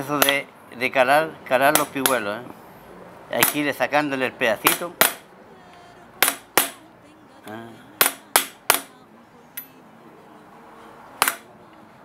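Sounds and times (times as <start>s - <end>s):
hammer striking metal chisel: 0.0s - 0.5s, 1.7s - 2.3s, 3.4s - 3.7s, 4.6s - 5.3s, 6.2s - 6.8s, 8.0s - 8.9s, 11.2s - 11.5s.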